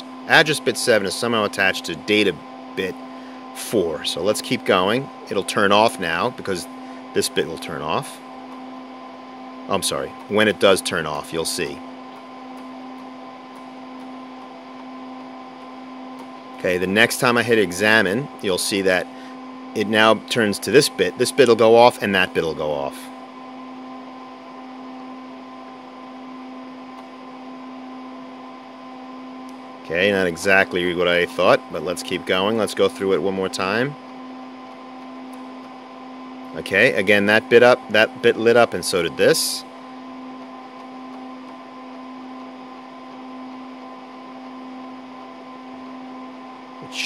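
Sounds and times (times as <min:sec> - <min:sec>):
computer humming with cooling fans: 0:00.0 - 0:47.0.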